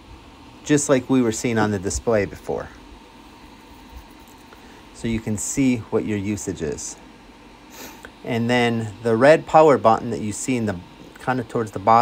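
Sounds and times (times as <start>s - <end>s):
electric fan whirring: 0.0s - 12.0s.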